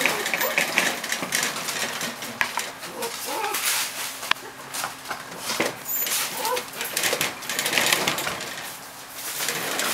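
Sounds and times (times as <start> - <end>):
puppy whimpering: 0.0 - 0.8, 2.9 - 3.6, 5.9 - 6.9.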